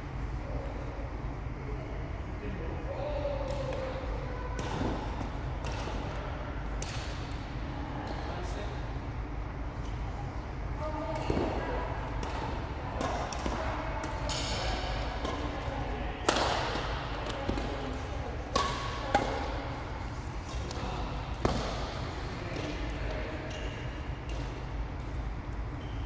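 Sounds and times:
racket hitting shuttlecock: 3.4 - 7.4, 12.2 - 19.8, 20.4 - 22.8.

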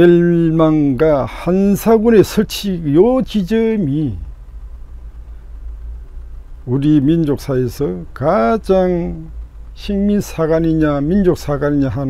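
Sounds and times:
man's voice: 0.0 - 4.3, 6.6 - 12.0
low background hum: 0.0 - 12.0.

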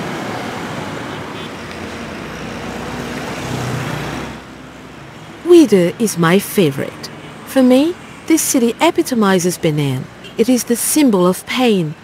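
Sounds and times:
motorbikes and cars passing: 0.0 - 12.0.

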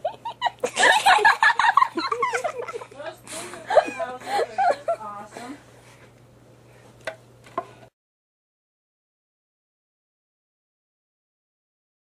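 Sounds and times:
faint steady hum: 0.0 - 7.9.

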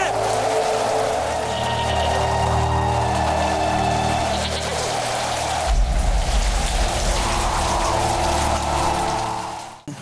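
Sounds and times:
heavy rain falling: 0.0 - 10.0
low steady drone: 0.1 - 9.8
deep rumble: 0.2 - 9.8.

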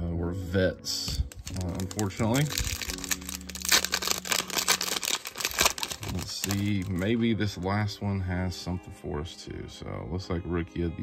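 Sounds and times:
wrapper tearing and crinkling: 1.3 - 7.2.

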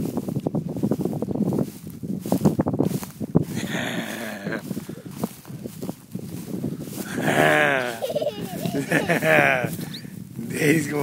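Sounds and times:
rustling in grass: 0.0 - 11.0.

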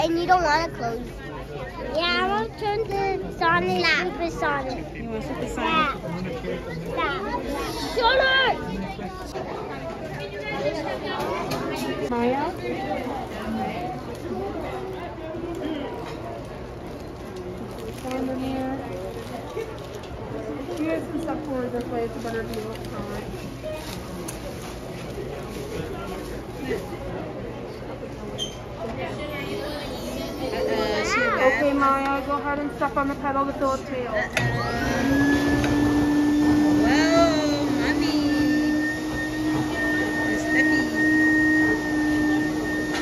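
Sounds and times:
faint background talking: 0.0 - 43.0
blower humming with whine: 34.3 - 43.0.

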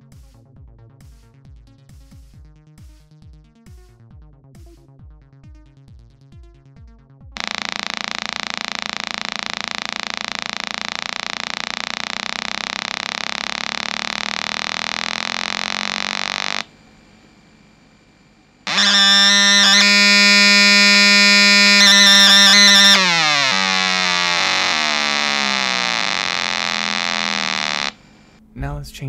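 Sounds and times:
harsh electronic square-wave buzz: 7.4 - 28.4.

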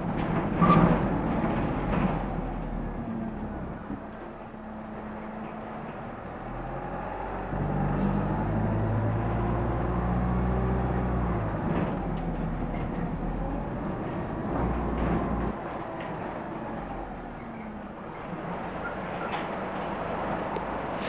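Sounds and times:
bus diesel engine: 0.0 - 21.0.

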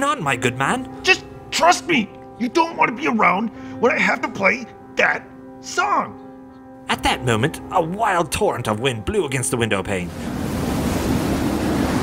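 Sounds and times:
strong wind against a window: 10.1 - 12.0.

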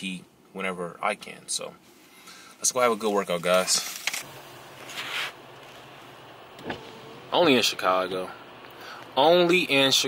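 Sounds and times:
low hum inside a car: 2.8 - 10.0.

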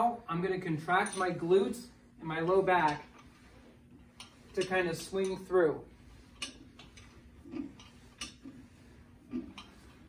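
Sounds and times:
exercise machine swinging: 2.4 - 10.0.

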